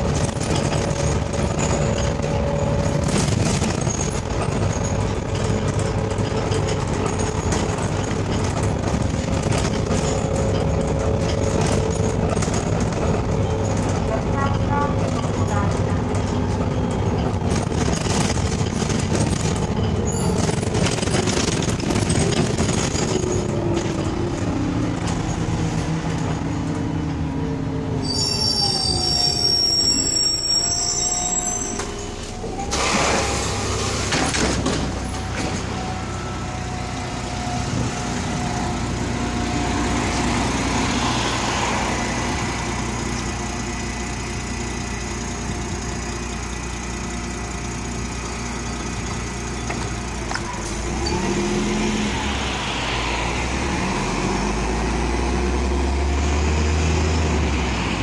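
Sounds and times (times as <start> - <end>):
bus engine and road rumble: 0.0 - 58.0
brake squeal: 19.3 - 20.8, 28.0 - 34.1.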